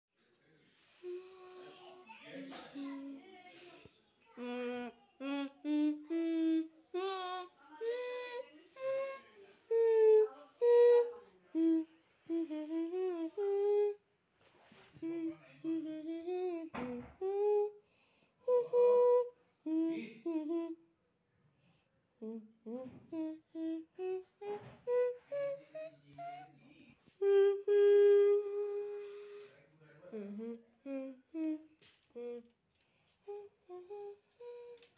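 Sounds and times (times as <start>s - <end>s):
person humming a slow tune: 1.0s - 1.8s, 4.4s - 14.0s, 15.0s - 17.8s, 18.4s - 20.8s, 22.2s - 26.5s, 27.1s - 29.4s, 30.1s - 32.6s, 33.2s - 34.9s
breaths: 17.3s - 18.5s, 21.5s - 22.0s, 28.6s - 34.9s.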